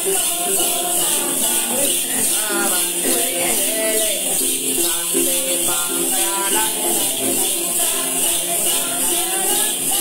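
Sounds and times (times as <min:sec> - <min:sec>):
jingling bell rattles: 0:00.0 - 0:10.0
plucked gourd lute: 0:00.0 - 0:10.0
woman singing a chant: 0:00.0 - 0:10.0.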